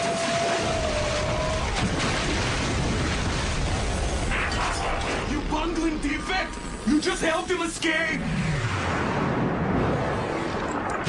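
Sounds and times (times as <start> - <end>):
ice collapsing rumble: 0.0 - 11.0.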